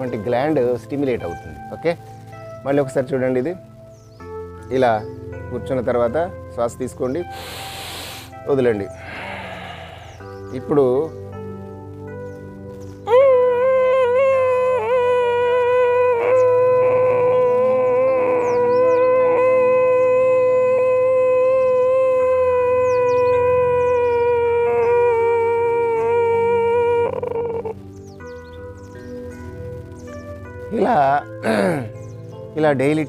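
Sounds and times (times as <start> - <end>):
soft background music: 0.0 - 33.0
person humming long throat tone: 7.3 - 10.4, 13.1 - 27.8, 31.4 - 32.0.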